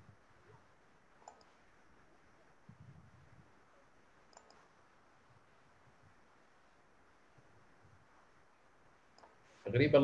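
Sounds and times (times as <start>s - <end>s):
faint room hiss: 0.0s - 10.0s
short faint clicks: 1.2s - 1.6s, 4.3s - 4.7s.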